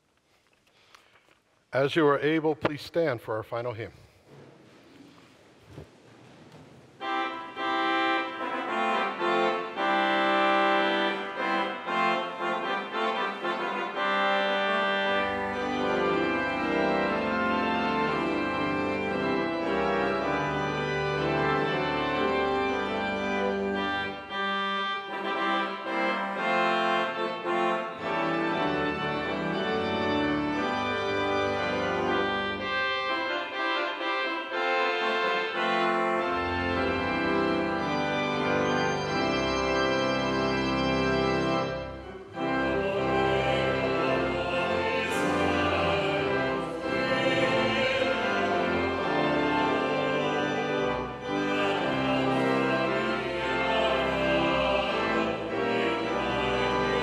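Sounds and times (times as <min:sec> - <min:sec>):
church organ chords: 0:07.0 - 0:57.0
deep organ bass pedal notes: 0:07.0 - 0:57.0.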